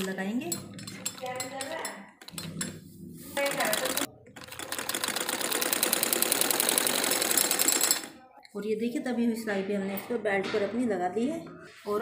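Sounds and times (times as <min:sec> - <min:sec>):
sewing machine running: 0:03.4 - 0:08.2.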